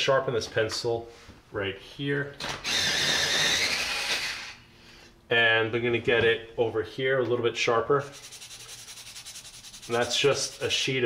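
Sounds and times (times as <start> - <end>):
pencil sharpener grinding: 2.6 - 4.5, 8.1 - 10.6.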